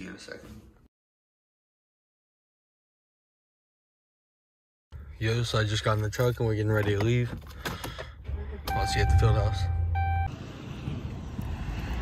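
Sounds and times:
electronic chime tone: 0:08.7 - 0:10.3.

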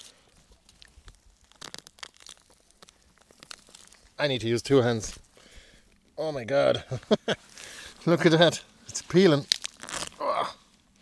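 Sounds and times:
soil and roots crackling: 0:00.0 - 0:11.0.

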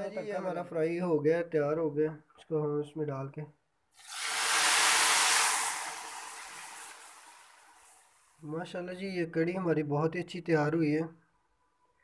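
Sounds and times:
hot oil sizzling: 0:04.0 - 0:08.4.

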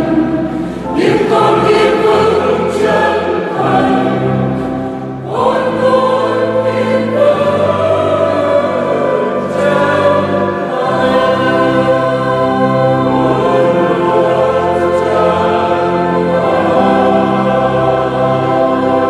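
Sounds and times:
mixed choir singing a hymn: 0:00.0 - 0:19.0.

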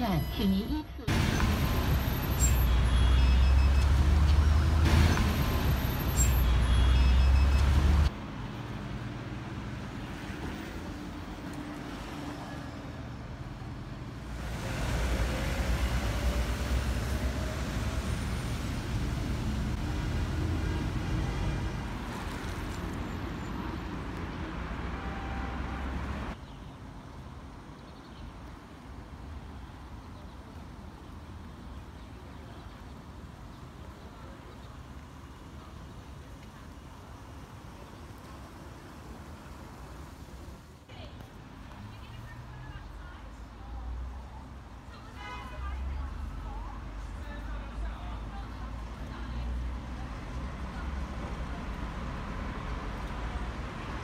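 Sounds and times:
street traffic: 0:00.0 - 0:54.0
bus engine loud and low: 0:00.7 - 0:26.4.

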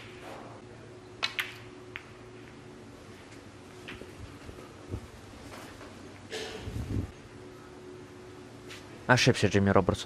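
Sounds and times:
snooker balls clicking: 0:01.2 - 0:02.7.

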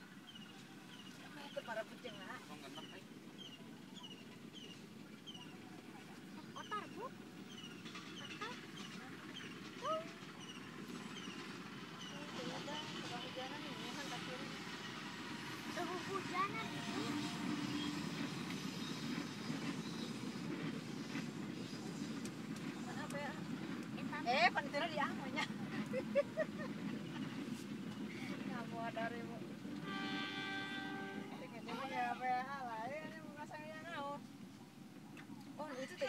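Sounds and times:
diesel locomotive rumble: 0:00.0 - 0:36.0.

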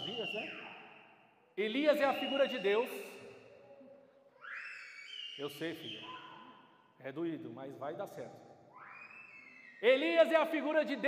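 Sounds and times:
man's voice in reverberant hall: 0:00.0 - 0:03.4, 0:05.4 - 0:08.6, 0:09.6 - 0:11.0.

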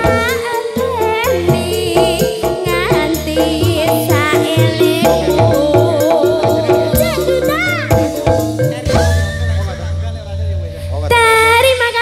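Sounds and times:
live band playing instrumental: 0:00.0 - 0:12.0.

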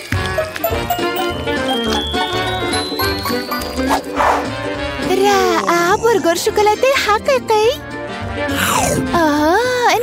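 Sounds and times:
upbeat music with bass beat: 0:00.3 - 0:04.8.

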